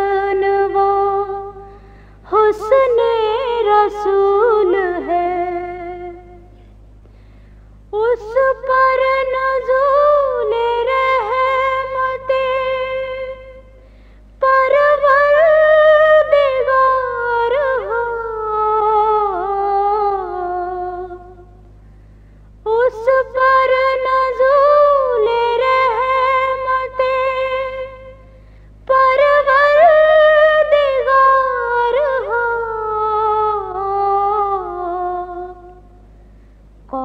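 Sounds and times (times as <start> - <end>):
woman singing a long note: 22.6 - 35.8.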